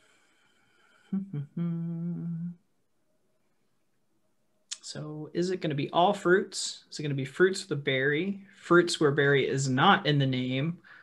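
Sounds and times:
person humming: 0:01.1 - 0:02.6.

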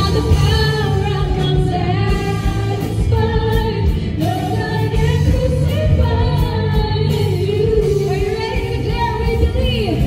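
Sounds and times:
singers singing worship song: 0:00.0 - 0:08.8
band accompaniment: 0:00.0 - 0:10.0.

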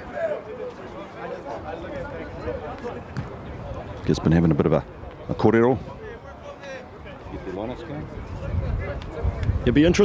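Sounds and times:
distant voices talking: 0:00.0 - 0:10.0
open-air ambience: 0:00.0 - 0:10.0.

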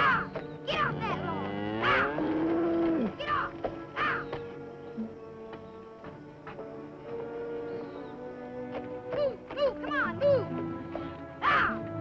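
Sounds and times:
sharp bird calls: 0:00.0 - 0:01.2, 0:03.3 - 0:05.9
background music score: 0:00.0 - 0:12.0
cow mooing: 0:00.8 - 0:03.2.

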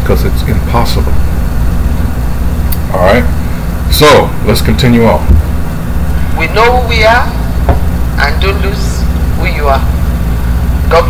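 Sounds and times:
steady low bass hum: 0:00.0 - 0:11.0.

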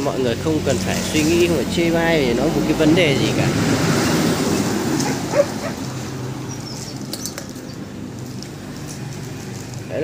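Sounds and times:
puppy chirp: 0:05.0 - 0:05.8.

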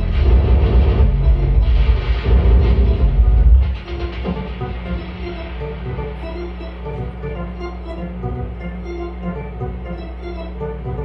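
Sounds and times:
deep bass drone: 0:00.0 - 0:11.0
sustained electronic tones: 0:00.0 - 0:11.0.

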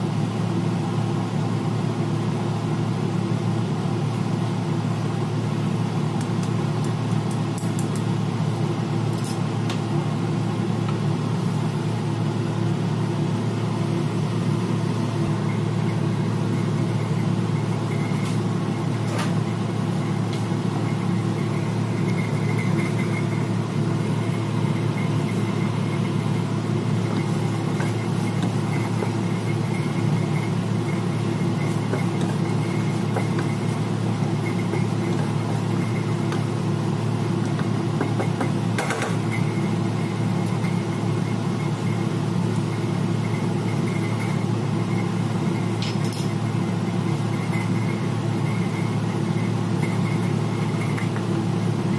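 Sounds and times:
mechanical hum with high whine: 0:00.0 - 0:51.9.

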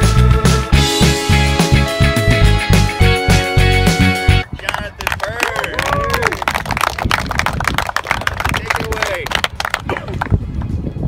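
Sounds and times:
hand clapping: 0:04.6 - 0:10.4.

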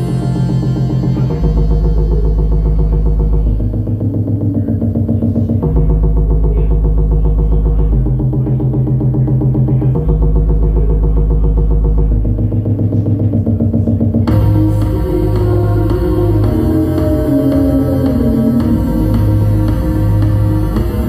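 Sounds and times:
deep bass line: 0:00.0 - 0:21.0
pulsing synthesizer pattern: 0:00.0 - 0:21.0.

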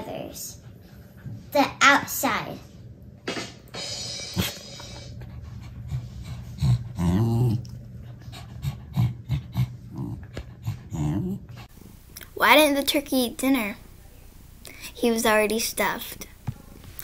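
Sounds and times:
dogs play-growling: 0:05.3 - 0:11.7.

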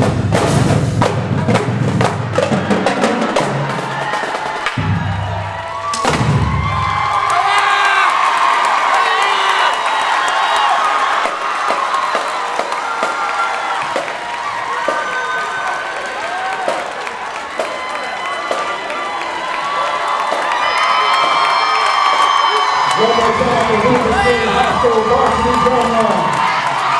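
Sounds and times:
marching drumline: 0:00.0 - 0:07.3, 0:10.0 - 0:22.3
crowd cheering and screaming: 0:02.4 - 0:26.9.

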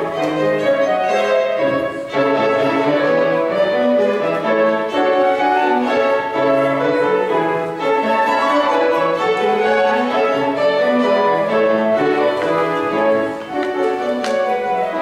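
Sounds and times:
flute violin and piano trio: 0:00.0 - 0:15.0.

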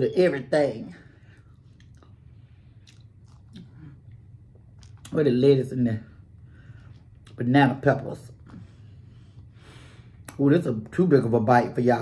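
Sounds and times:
chewing salad: 0:01.2 - 0:05.2.

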